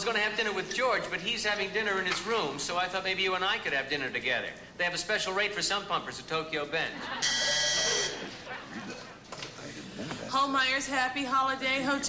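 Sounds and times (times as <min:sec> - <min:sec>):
switchboard buzzer: 0:07.2 - 0:08.2.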